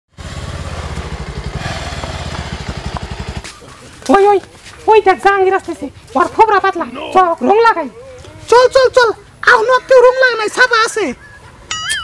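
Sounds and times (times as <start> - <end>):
motorcycle engine running: 0.1 - 4.3.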